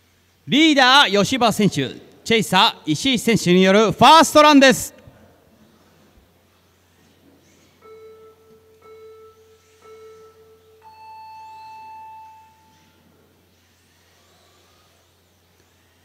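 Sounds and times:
countdown beeps: 7.8 - 13.0
long high start beep: 7.8 - 13.2.

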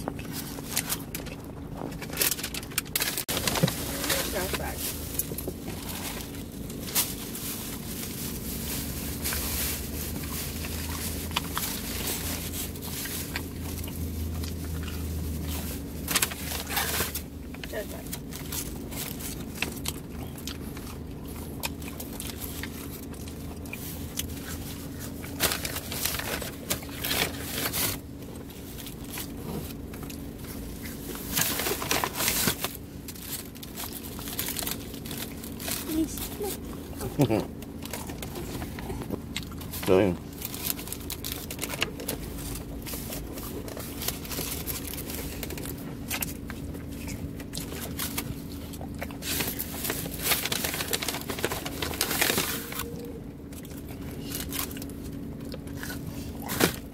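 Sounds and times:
paper bag rustling: 0.0 - 20.8, 21.4 - 56.9
small crackles: 0.0 - 56.9
steady low hum: 0.0 - 56.9.

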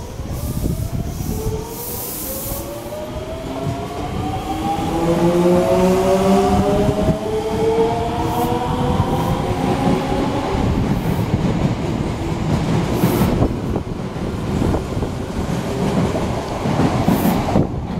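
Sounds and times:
rumble of passing train cars: 0.0 - 17.9.

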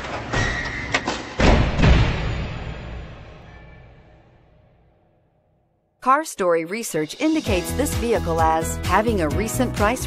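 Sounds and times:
sharp hits and deep thuds: 1.4 - 3.6.

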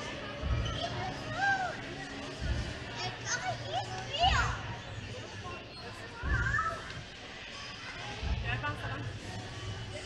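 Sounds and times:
background chatter: 0.0 - 10.0
children calling and squealing: 5.7 - 8.1.

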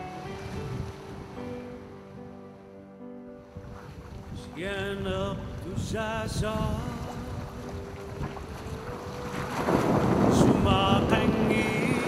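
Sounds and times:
water rushing along hull: 0.0 - 12.0
ship hull pushing through sea ice: 3.6 - 12.0.

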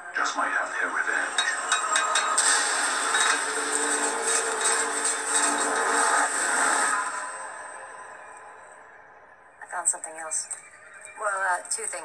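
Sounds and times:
low drone: 0.0 - 11.8
harsh grating sound design: 1.0 - 8.4.

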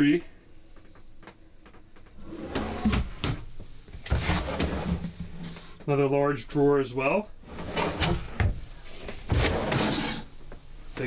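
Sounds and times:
drawers sliding on metal slides: 2.2 - 3.2, 4.1 - 5.7, 7.4 - 10.3.

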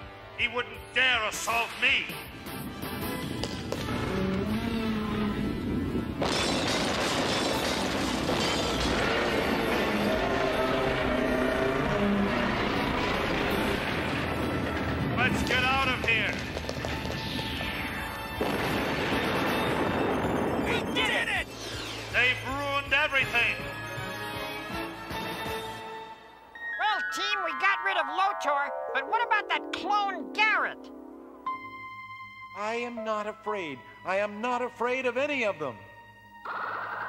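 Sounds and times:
dramatic music: 1.2 - 33.0
noisy impact sound effects: 6.2 - 11.0.

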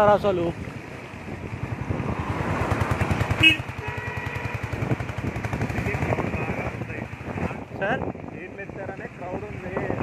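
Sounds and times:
motorcycle engine running: 0.6 - 9.8.

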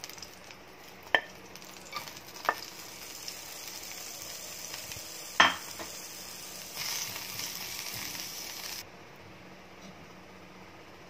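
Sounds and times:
food sizzling in oil: 0.0 - 8.8.

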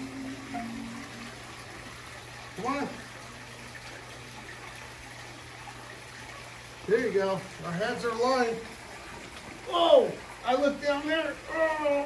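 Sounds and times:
low hum: 0.0 - 2.2.

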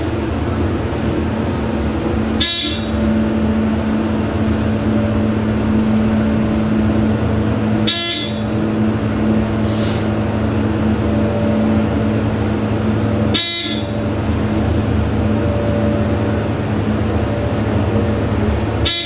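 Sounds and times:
elevator drive humming: 0.0 - 19.0.

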